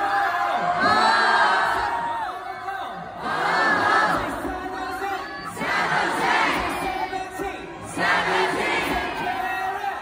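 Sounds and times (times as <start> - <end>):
crowd cheering and screaming: 0.0 - 3.2.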